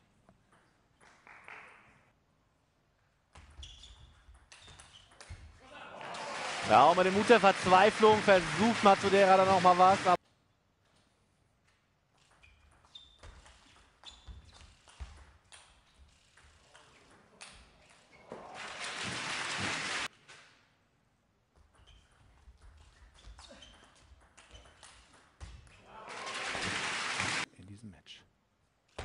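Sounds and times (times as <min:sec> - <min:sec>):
crowd applauding: 0:05.9 - 0:10.2, 0:18.5 - 0:20.1, 0:26.0 - 0:27.4.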